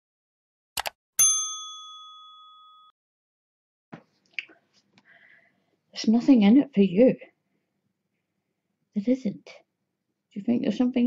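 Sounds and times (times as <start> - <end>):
bright bell chime: 1.2 - 2.9.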